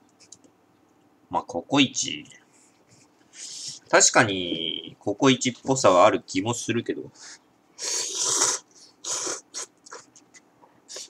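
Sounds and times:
person slurping noodles: 7.8s - 10.1s.

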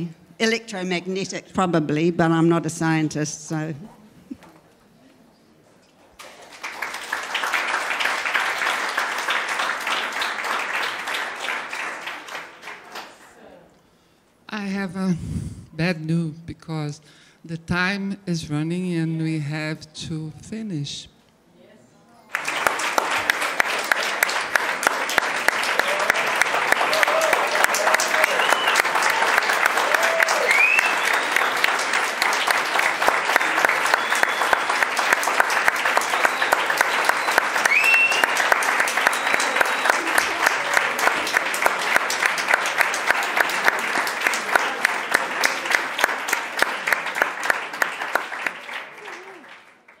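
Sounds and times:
rhythmic loud claps: 6.2s - 13.2s, 22.3s - 50.0s
audience applauding: 6.2s - 13.4s, 22.3s - 50.0s.

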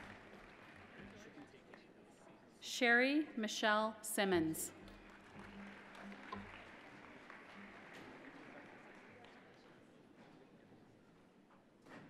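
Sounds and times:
audience clapping: 0.0s - 1.9s, 4.9s - 9.9s.

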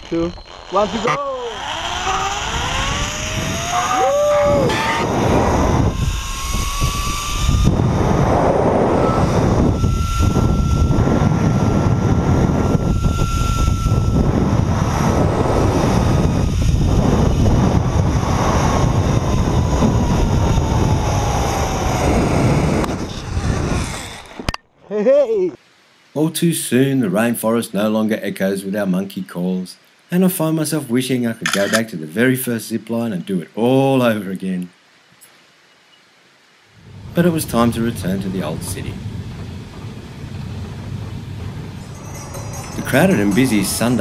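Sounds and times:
zip-line pulleys whining on cable: 0.0s - 24.6s, 40.2s - 44.0s
wind rush on microphone: 1.5s - 24.6s, 36.8s - 44.0s.

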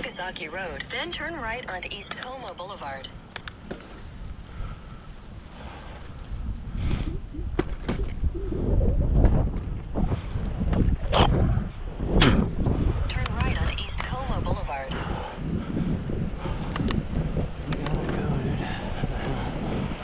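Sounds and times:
clicks: 1.8s - 3.8s
wind buffeting microphone: 3.2s - 20.0s.

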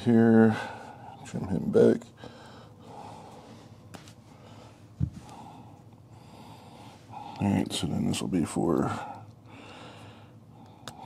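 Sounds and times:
faint close breathing: 2.2s - 7.5s, 8.9s - 11.0s.

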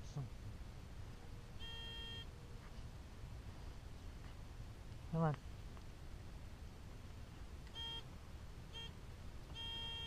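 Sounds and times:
metal detector beeping: 1.6s - 2.3s, 7.7s - 8.1s, 8.7s - 10.0s.

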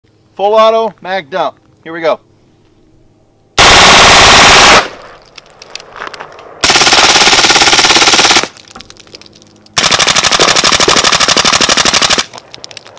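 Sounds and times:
submachine gun full-auto fire: 3.6s - 5.0s, 6.6s - 8.6s, 9.8s - 12.3s.

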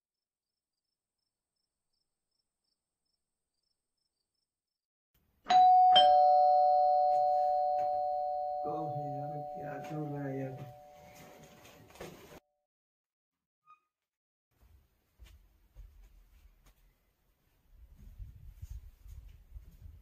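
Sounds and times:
doorbell chime: 5.5s - 11.5s
man speaking: 8.7s - 10.8s.

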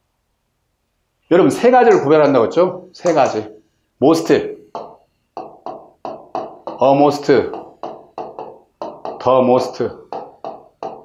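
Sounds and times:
man speaking: 1.3s - 4.6s, 6.8s - 7.6s, 9.1s - 10.1s
marker pen tapping on board: 1.9s - 2.1s, 3.0s - 3.4s, 4.7s - 11.0s.

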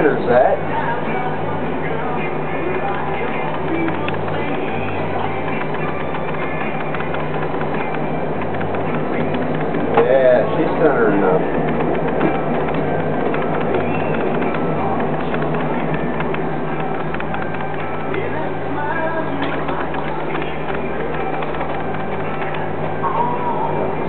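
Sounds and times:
background music: 0.0s - 24.0s
potter's wheel humming: 0.0s - 24.0s.

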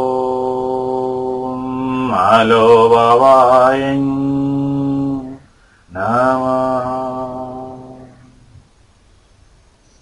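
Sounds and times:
man chanting om: 0.0s - 8.6s.

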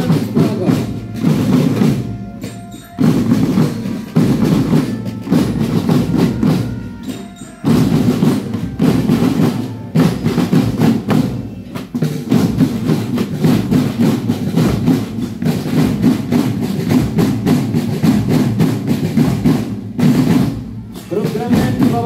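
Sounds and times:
marching drum band: 0.0s - 22.0s.

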